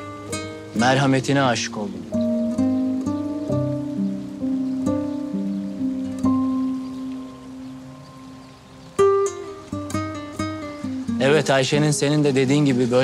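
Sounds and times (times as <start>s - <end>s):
plucked guitar melody: 0.0s - 13.0s.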